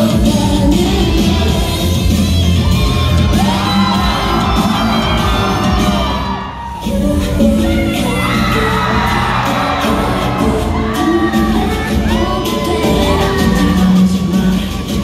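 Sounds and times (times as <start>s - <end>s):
loud bass-heavy backing track: 0.0s - 15.0s
women singing pop music: 0.0s - 15.0s.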